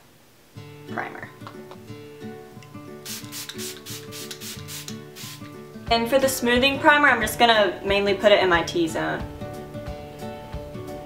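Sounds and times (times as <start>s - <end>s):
acoustic guitar music: 0.5s - 11.0s
spray bottle hissing: 3.0s - 5.5s.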